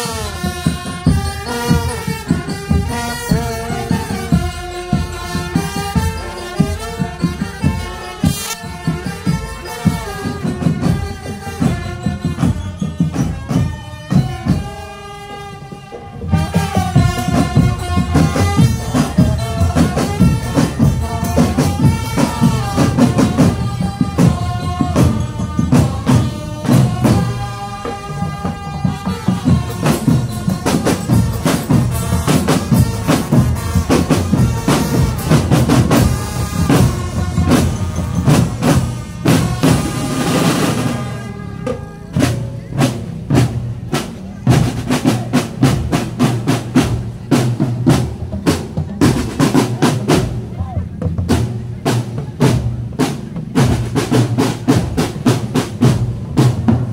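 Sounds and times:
marching drums: 0.0s - 56.9s
melody over drums: 0.0s - 56.9s.

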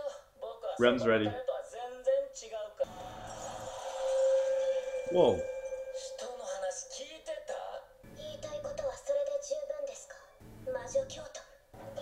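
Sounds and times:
held note: 2.9s - 8.9s.

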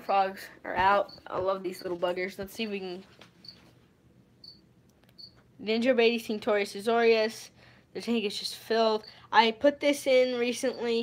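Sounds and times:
cricket chirping: 4.4s - 4.6s, 5.2s - 5.4s.

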